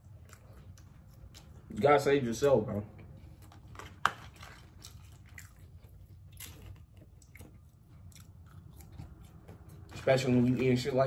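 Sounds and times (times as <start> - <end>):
chewing food: 0.0 - 10.9.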